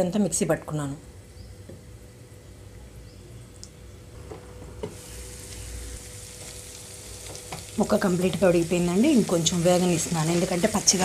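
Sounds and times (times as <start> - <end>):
food sizzling in oil: 4.9 - 11.0.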